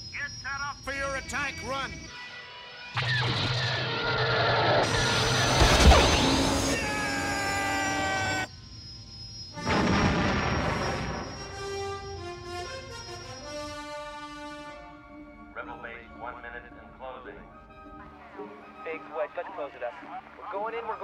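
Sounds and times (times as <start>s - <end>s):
falling spacecraft whine: 2.9s - 13.5s
blast: 3.0s - 8.4s, 9.6s - 11.6s
orchestral score: 11.1s - 21.0s.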